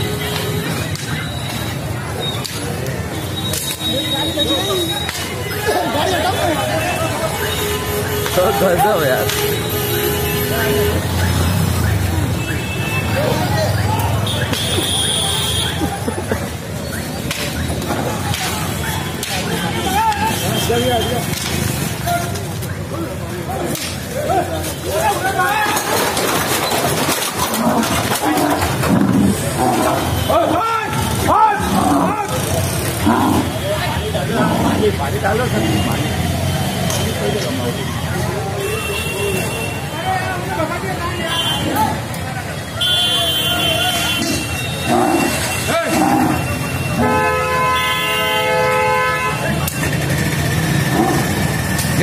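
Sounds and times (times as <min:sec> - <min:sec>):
street scuffle: 0:00.0 - 0:52.0
bulls grunting: 0:27.0 - 0:30.3, 0:31.6 - 0:35.1, 0:44.3 - 0:46.7, 0:50.7 - 0:51.6
vehicle horn blast: 0:42.8 - 0:44.8, 0:46.9 - 0:49.6.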